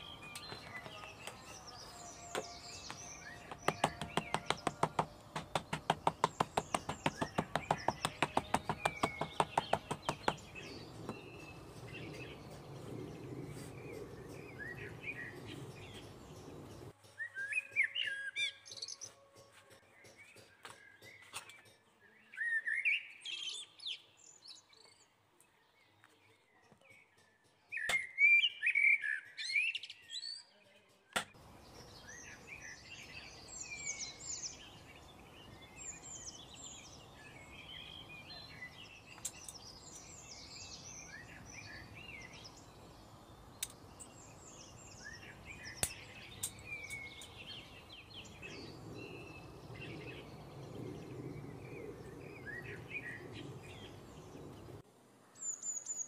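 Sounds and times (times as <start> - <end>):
songbirds chirping and twittering: 0.0 - 56.0.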